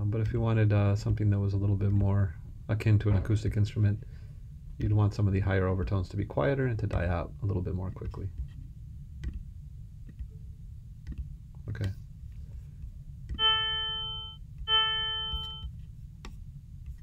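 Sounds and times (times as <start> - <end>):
synthesizer tones: 13.4 - 15.7.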